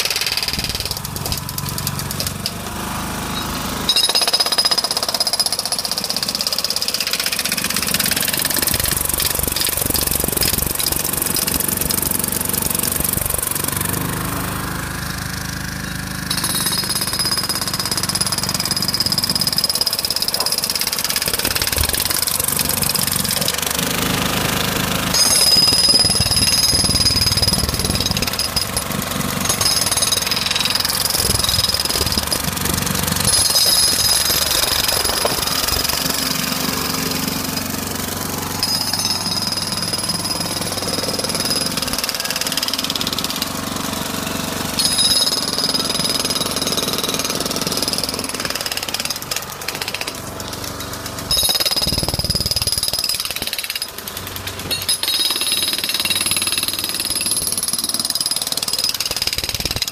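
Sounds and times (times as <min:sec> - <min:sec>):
hydraulic breaker hammering tarmac: 0:00.0 - 0:59.9.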